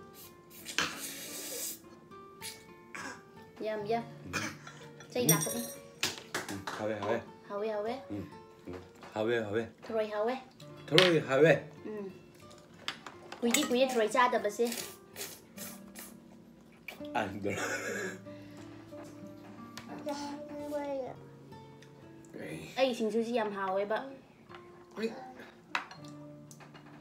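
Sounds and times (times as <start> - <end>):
cutlery clinking against dishes: 4.5 - 7.2, 12.4 - 15.0, 25.7 - 27.0
utensil clinking against ceramic: 4.7 - 5.9, 13.4 - 14.0.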